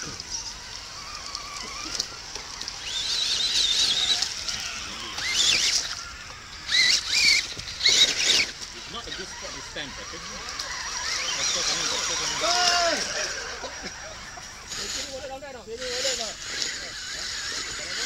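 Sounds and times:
toy truck electric motors whining: 0.0 - 18.0.

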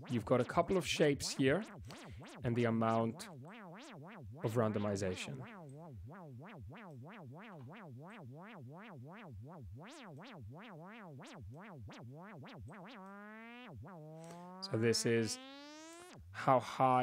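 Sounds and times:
synthesizer note sweeping in pitch: 0.0 - 16.2.

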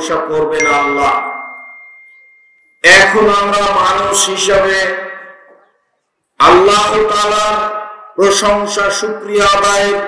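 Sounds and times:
man speaking over public address: 0.0 - 1.4, 2.8 - 5.6, 6.4 - 10.0
high-pitched ring: 0.6 - 4.2.

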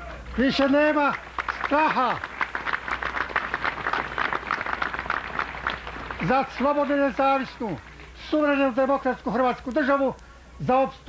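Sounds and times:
crowd applauding: 0.0 - 8.9.

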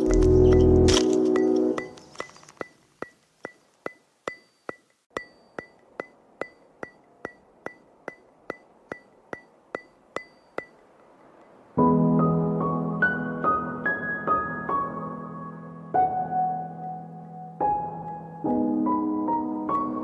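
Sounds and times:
steady ticking with high ring: 1.4 - 11.6.

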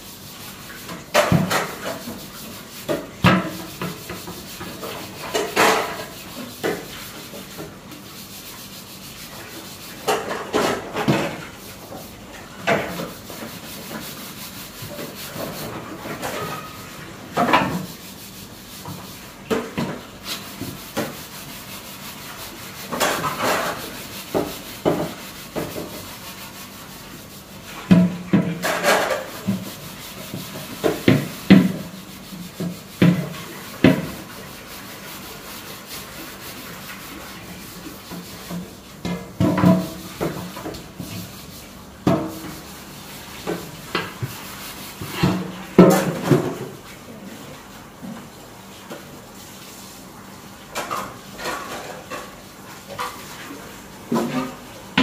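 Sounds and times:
metal pots being scrubbed: 0.0 - 55.0.

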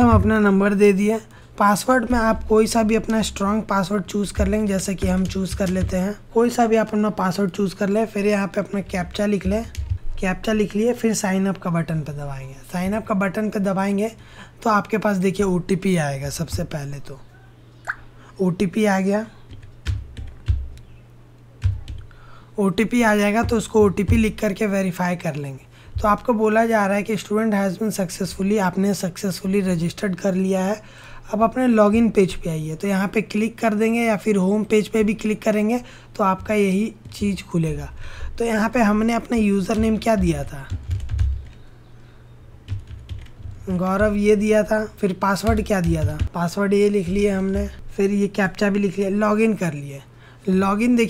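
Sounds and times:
computer keyboard keystrokes: 4.1 - 6.0, 8.8 - 10.2, 19.5 - 20.9, 21.6 - 22.1, 23.3 - 24.4, 36.3 - 37.8, 39.2 - 41.6, 42.7 - 44.3, 45.4 - 47.8.

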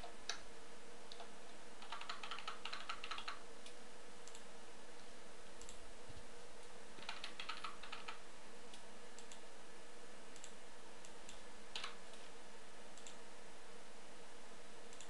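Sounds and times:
faint steady hum: 0.0 - 15.0
keyboard typing: 1.1 - 3.4, 7.0 - 8.2, 11.3 - 12.0
mouse clicks: 1.1 - 4.5, 5.6 - 9.4.

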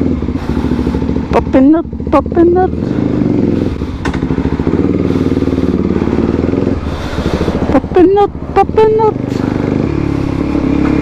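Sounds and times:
motorcycle engine at low revs: 0.0 - 11.0.

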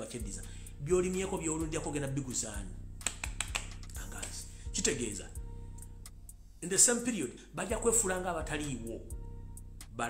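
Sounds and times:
man speaking: 0.0 - 2.8, 4.0 - 5.4, 6.6 - 9.1
background music with soft beat: 0.0 - 10.0
sharp clicks: 3.0 - 4.4.

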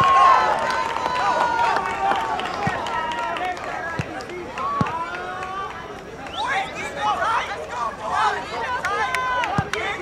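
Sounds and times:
distant overlapping shouts: 0.0 - 10.0.

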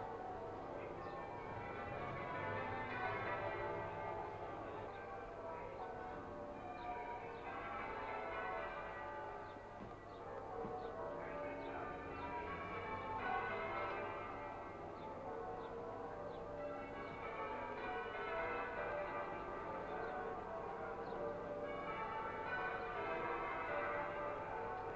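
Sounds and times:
church bells pealing: 0.0 - 24.9.

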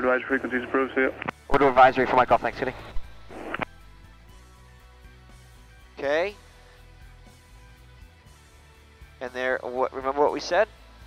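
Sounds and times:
speech over headsets: 0.0 - 2.9
background music: 0.0 - 11.0.

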